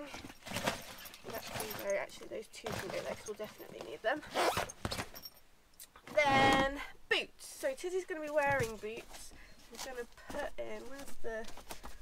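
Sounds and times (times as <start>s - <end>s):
items knocking and clattering: 0.0s - 5.4s
nylon fabric rustling: 0.0s - 5.4s, 8.0s - 12.0s.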